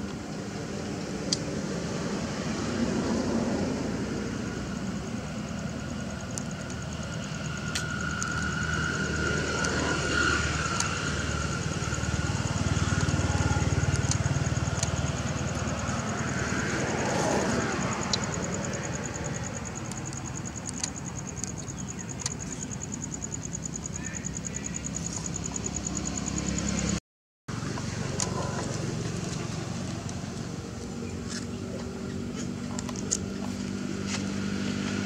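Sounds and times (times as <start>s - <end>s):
vehicle engine hum: 0.0s - 35.0s
high pulsing insect buzz: 1.7s - 27.0s.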